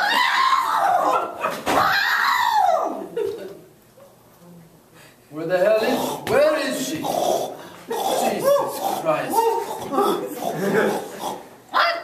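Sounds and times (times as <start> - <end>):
person imitating donkey bray: 5.9 - 12.0.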